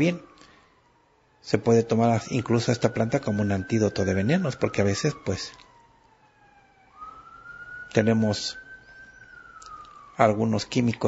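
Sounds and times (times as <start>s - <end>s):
emergency siren wailing: 0.0s - 11.0s.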